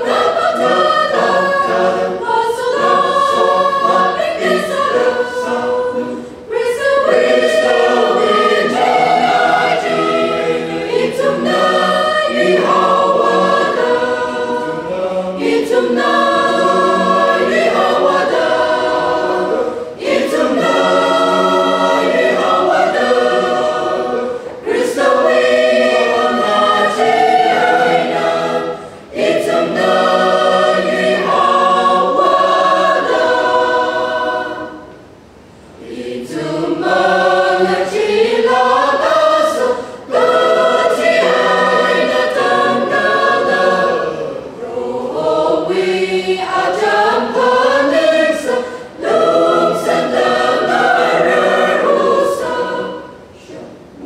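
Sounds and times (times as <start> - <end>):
mixed choir singing in harmony: 0.0 - 54.0.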